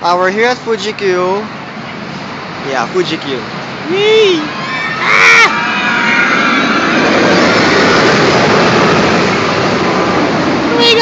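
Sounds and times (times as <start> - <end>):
roller coaster rushing on track: 2.6 - 11.0
person exclaiming: 3.9 - 5.6.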